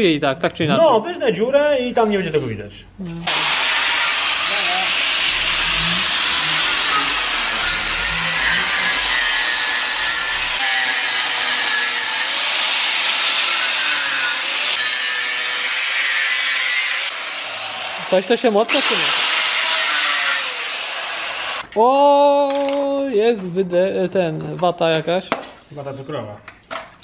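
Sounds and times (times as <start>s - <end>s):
angle grinder cutting steel: 3.3s - 21.6s.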